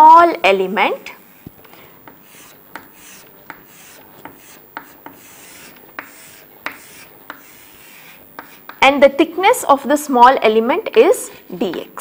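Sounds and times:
chalk scraping on chalkboard: 1.1 - 8.8
chalk tapping on board: 1.3 - 9.0.

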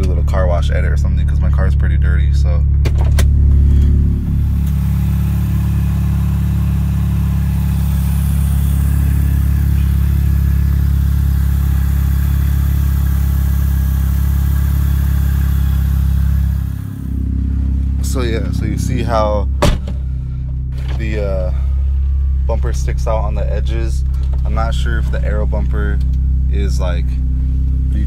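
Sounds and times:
car engine idling: 0.0 - 28.0.

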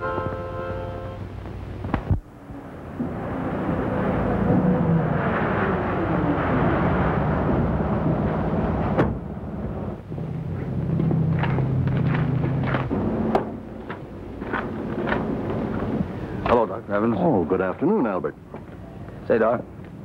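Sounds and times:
vehicle engine rumbling: 0.0 - 20.0.

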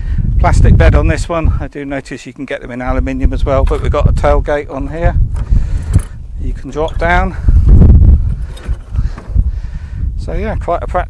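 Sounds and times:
wind rumble on microphone: 0.0 - 11.0
tailgate dropping open with thump: 8.3 - 9.4.

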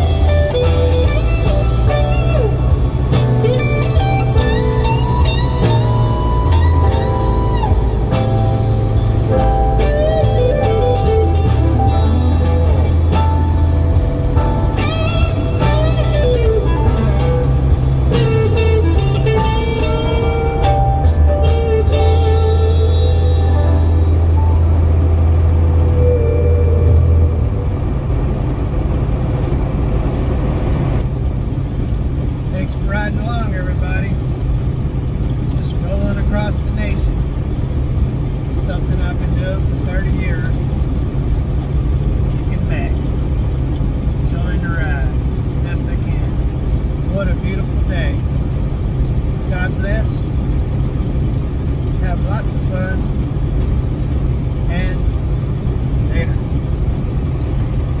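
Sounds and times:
truck engine and road rumble: 0.0 - 58.0
man talking: 32.5 - 34.2, 35.5 - 37.2, 38.6 - 40.6, 42.3 - 43.0, 44.3 - 46.4, 47.1 - 48.2, 49.5 - 50.4, 52.0 - 53.1, 54.7 - 55.0, 56.1 - 56.5.

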